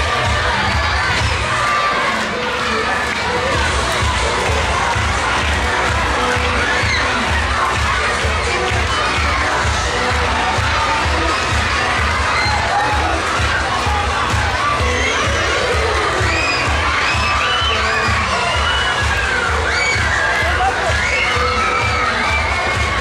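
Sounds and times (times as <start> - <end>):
children shouting and cheering: 0.0 - 23.0
pop music with bass beat: 2.8 - 23.0.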